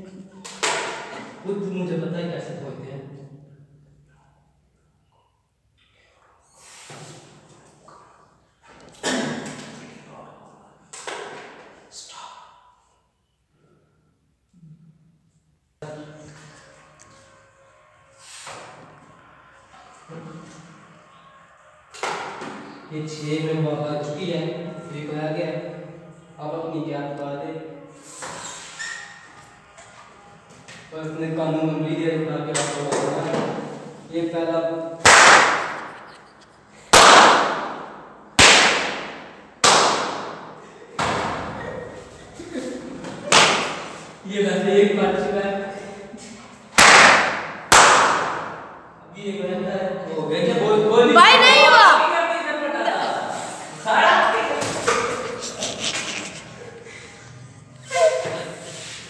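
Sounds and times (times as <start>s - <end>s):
balloons bursting with echo: 35.0s - 41.6s, 43.2s - 44.2s, 46.7s - 49.0s.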